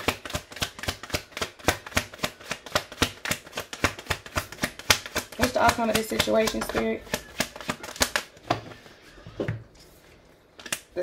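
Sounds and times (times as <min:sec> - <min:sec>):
cards being shuffled: 0:00.0 - 0:08.9, 0:09.8 - 0:11.0.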